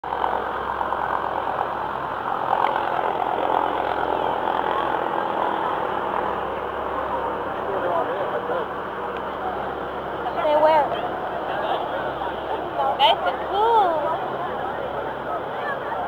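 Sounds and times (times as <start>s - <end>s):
boat engine hum: 0.0s - 16.0s
faint passengers' voices: 2.5s - 16.0s.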